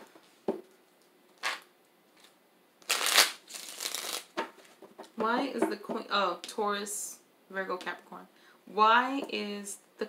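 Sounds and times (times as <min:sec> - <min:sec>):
cards riffle-shuffled: 0:02.8 - 0:04.4.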